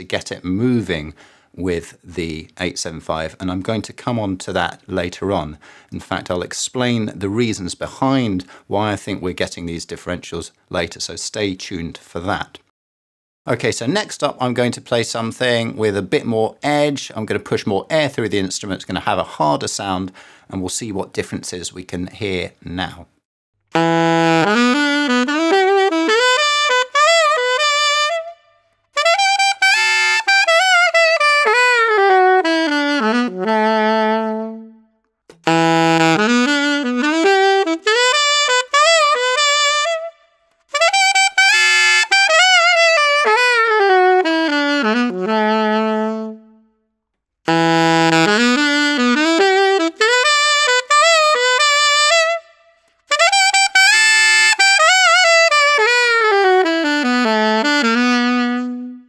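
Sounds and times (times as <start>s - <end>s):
alto saxophone playing loudly: 23.7s - 46.7s, 47.5s - 59.0s.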